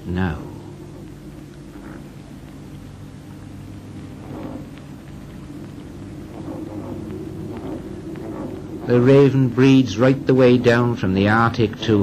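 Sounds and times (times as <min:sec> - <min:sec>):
ravens croaking: 0:00.0 - 0:12.0
steady low hum: 0:00.0 - 0:12.0.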